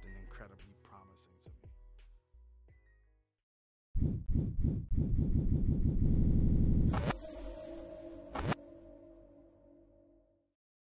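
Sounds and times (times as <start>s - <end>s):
low rumbling pulse: 4.0s - 10.2s.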